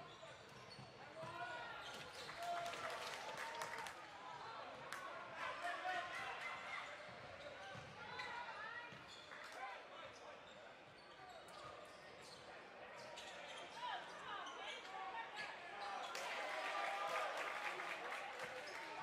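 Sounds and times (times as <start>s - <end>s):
voices of players and spectators: 0.0s - 19.0s.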